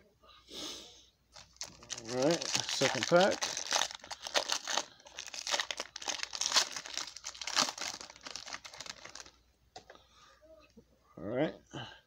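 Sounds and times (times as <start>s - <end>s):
plastic wrapper crinkling: 1.3s - 9.4s
faint handling of cards: 1.3s - 10.0s.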